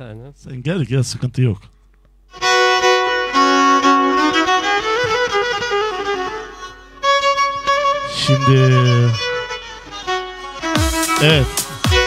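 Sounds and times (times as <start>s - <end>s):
bowed string melody: 2.3s - 12.0s.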